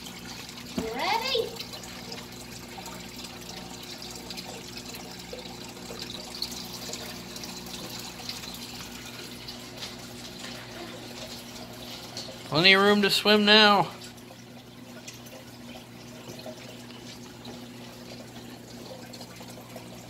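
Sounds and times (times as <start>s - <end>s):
filter low hum: 0.0s - 20.0s
water trickling: 0.0s - 20.0s.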